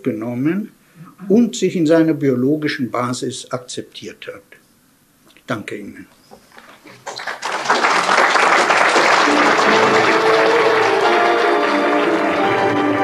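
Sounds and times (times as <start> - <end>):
audience applause: 6.7 - 13.0
theme music in held notes: 9.1 - 13.0.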